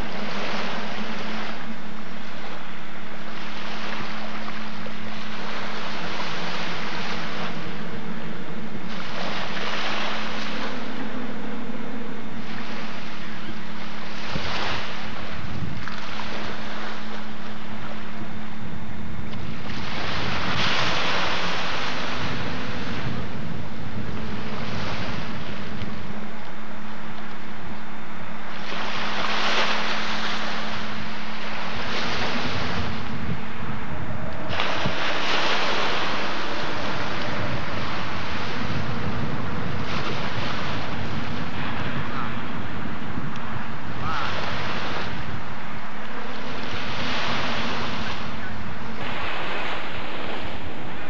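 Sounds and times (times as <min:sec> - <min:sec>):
steady low hum: 0:00.0 - 0:51.0
rushing noise: 0:18.9 - 0:51.0.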